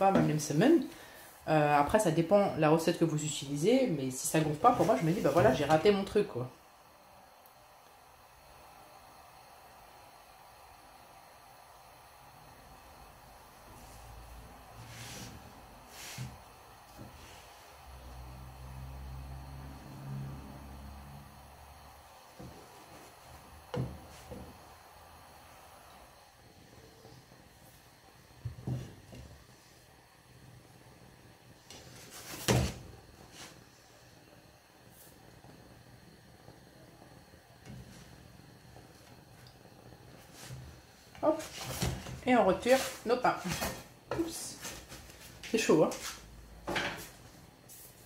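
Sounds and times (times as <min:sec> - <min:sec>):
faint kitchen hiss: 0:00.0 - 0:48.0.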